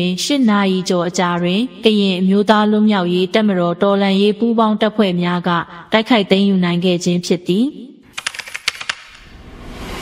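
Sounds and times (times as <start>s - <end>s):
sharp clicks: 8.1s - 9.3s
rush of noise: 9.3s - 10.0s.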